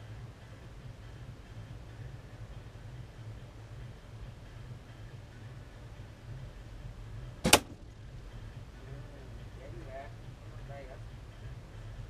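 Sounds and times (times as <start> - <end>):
bow string crack: 7.4 - 8.0.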